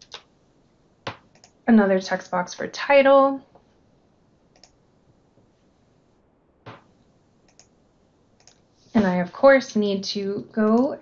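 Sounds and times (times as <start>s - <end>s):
computer mouse clicks: 1.1s - 1.6s, 4.5s - 4.8s, 7.5s - 7.7s, 8.4s - 8.6s.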